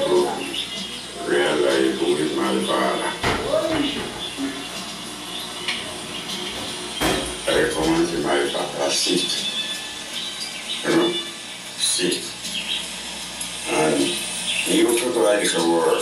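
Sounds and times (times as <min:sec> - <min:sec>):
indistinct voices from television: 0:00.0 - 0:16.0
music from television: 0:00.0 - 0:16.0.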